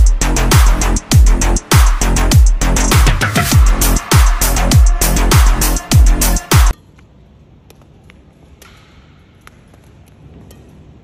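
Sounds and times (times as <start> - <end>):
low hum of indoor hall: 6.7 - 11.0
racket tapping shuttlecock: 6.7 - 11.0.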